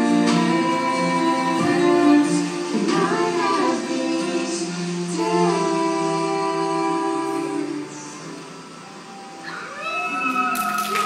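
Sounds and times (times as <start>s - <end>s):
song playing: 0.0s - 9.5s.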